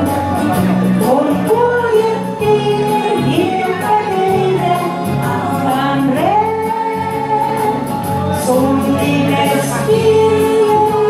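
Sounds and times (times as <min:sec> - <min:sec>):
backing music with bass line: 0:00.0 - 0:11.0
woman singing into microphone: 0:00.0 - 0:11.0.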